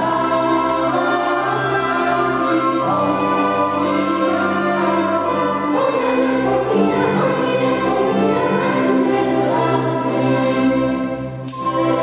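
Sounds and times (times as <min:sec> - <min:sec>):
mixed choir singing: 0:00.0 - 0:12.0
violins: 0:00.0 - 0:12.0.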